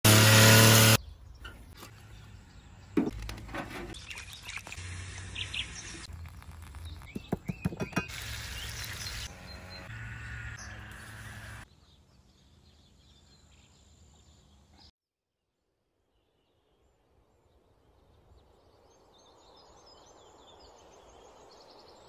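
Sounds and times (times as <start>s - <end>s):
birds chirping: 1.0s - 14.9s.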